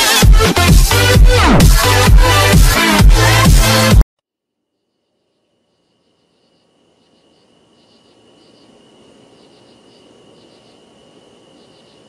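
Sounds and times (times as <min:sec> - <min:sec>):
crickets chirping: 0:04.8 - 0:12.0.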